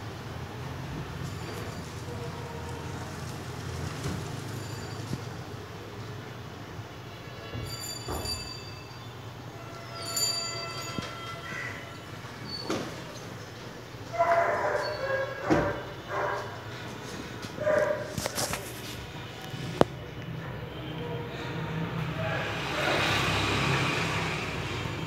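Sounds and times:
traffic hum: 0:00.0 - 0:25.0.

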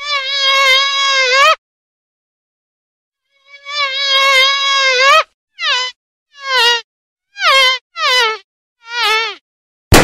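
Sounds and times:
fly buzzing: 0:00.0 - 0:01.6, 0:03.2 - 0:09.4.

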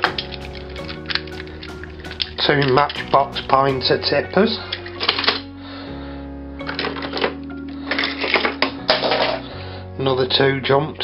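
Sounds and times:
background music: 0:00.0 - 0:11.0
metal toy cars clattering: 0:08.3 - 0:09.4.

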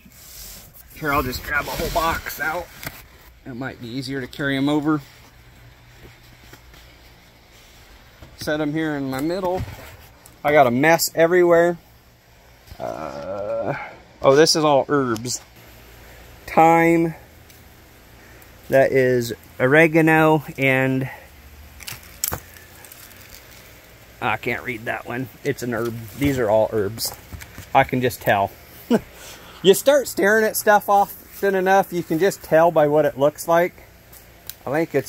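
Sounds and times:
low steady hum: 0:00.0 - 0:35.0
plastic and paper rustling: 0:21.8 - 0:28.4.

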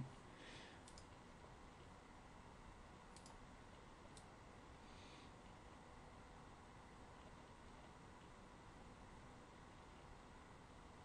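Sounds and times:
computer mouse clicks: 0:00.8 - 0:01.9, 0:03.1 - 0:04.3.

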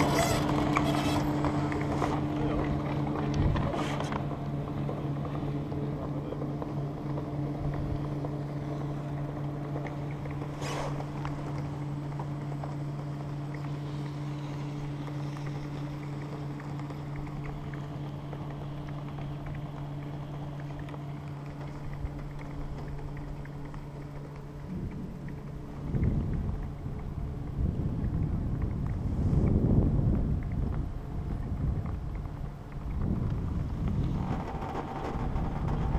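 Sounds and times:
chairlift low hum: 0:00.0 - 0:35.9
wind noise: 0:24.5 - 0:35.9.

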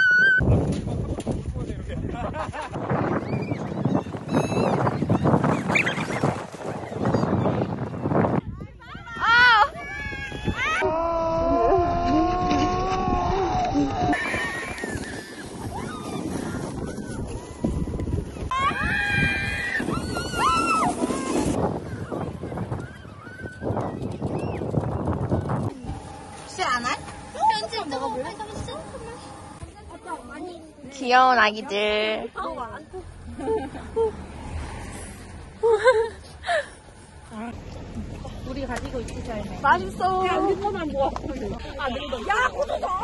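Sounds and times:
people shouting and squealing: 0:00.0 - 0:00.5, 0:08.9 - 0:24.8
plastic sleds sliding on snow: 0:05.0 - 0:08.2, 0:10.0 - 0:31.1
rough rushing noise: 0:19.2 - 0:22.8.

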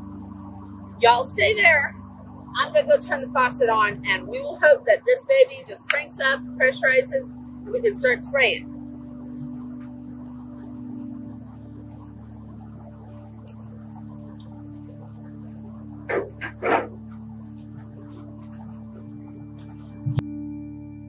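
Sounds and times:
low background music: 0:00.0 - 0:21.0
dog barking: 0:16.1 - 0:17.0.

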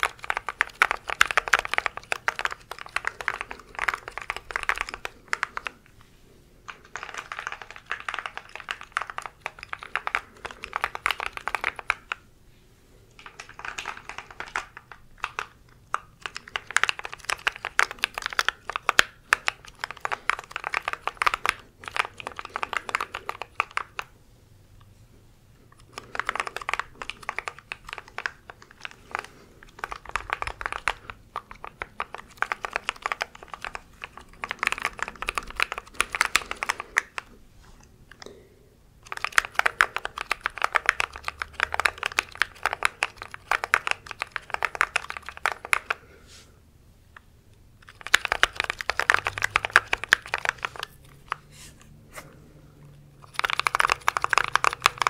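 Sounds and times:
mechanical keyboard typing: 0:00.0 - 0:05.8, 0:06.6 - 0:12.2, 0:13.2 - 0:24.1, 0:25.8 - 0:37.4, 0:39.0 - 0:46.0, 0:47.8 - 0:51.4, 0:53.2 - 0:55.0.

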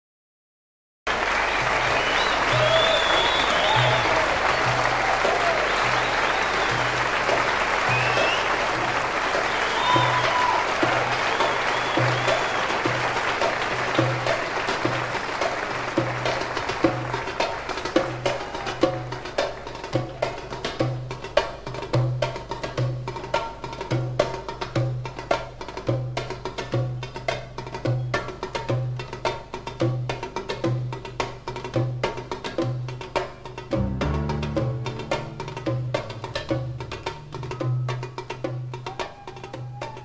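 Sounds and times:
audience applauding and cheering: 0:01.1 - 0:19.7, 0:33.7 - 0:40.0
hand percussion strikes: 0:16.9 - 0:40.0
low drum beat: 0:33.7 - 0:39.0.

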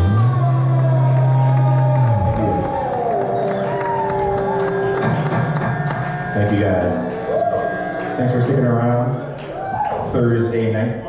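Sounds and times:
electric guitar sliding down: 0:00.0 - 0:09.3
crowd cheering: 0:00.0 - 0:11.0.

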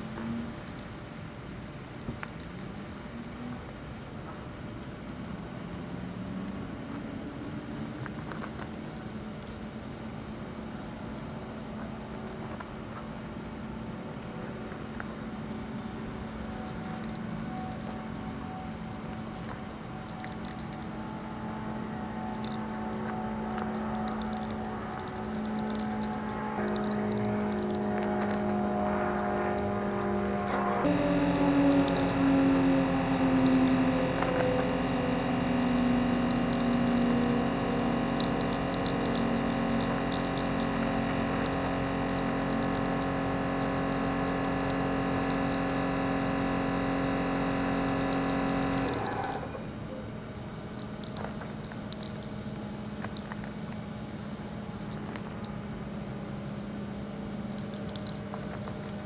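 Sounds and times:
engine hum: 0:12.0 - 0:50.0
spray paint hissing from aerosol can: 0:16.0 - 0:59.0.

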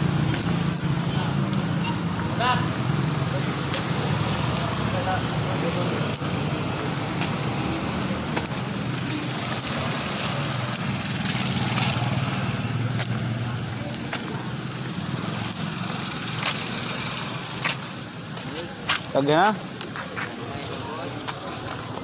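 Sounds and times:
street traffic: 0:00.0 - 0:22.0.

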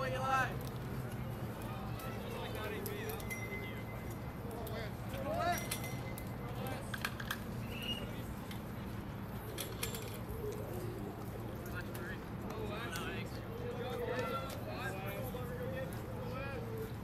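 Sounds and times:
distant voices: 0:00.0 - 0:17.0.

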